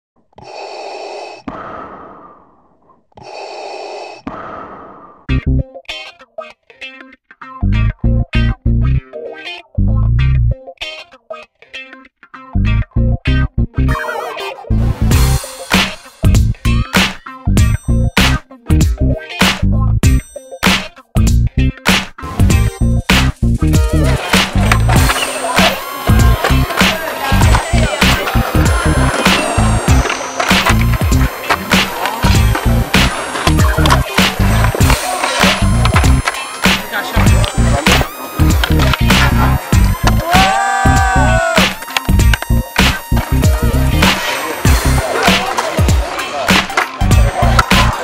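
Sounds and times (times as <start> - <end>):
breath-like noise swells: 0.4 - 5.3
rock track with distorted guitar: 11.8 - 48.0
music with heavy bass beat: 14.7 - 48.0
skateboard rolling on pavement: 22.5 - 40.3, 41.6 - 48.0
skateboard clacks: 24.0 - 40.5, 41.6 - 48.0.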